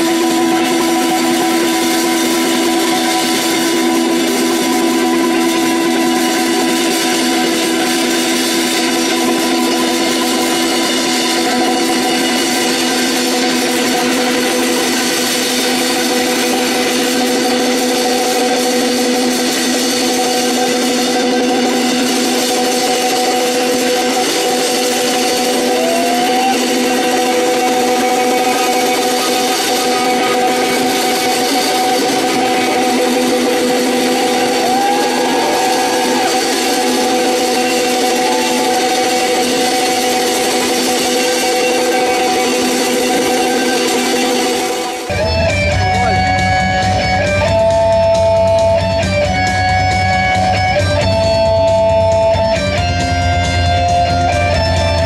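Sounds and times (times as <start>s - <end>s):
cymbals and drums: 0.0s - 55.0s
distorted electric guitars drone: 0.0s - 55.0s
sliding guitar notes: 0.0s - 55.0s.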